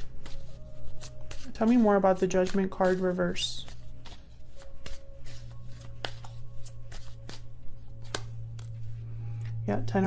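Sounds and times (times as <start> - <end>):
cards being shuffled: 0.0 - 9.0
low hum: 5.2 - 10.0.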